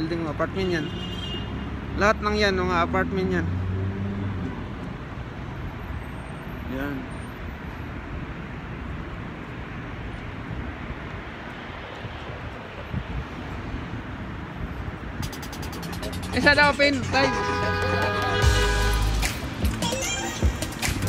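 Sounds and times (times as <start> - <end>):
road traffic rushing: 0.0 - 21.0.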